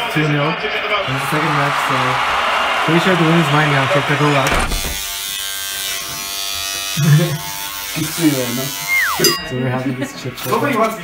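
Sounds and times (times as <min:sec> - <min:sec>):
electric beard trimmer buzzing: 0:01.1 - 0:11.0.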